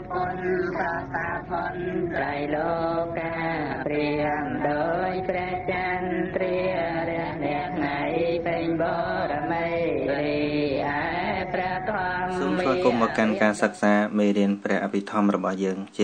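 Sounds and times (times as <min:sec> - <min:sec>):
steady low drone: 0:00.0 - 0:14.2
chanting with gliding notes: 0:00.0 - 0:16.0.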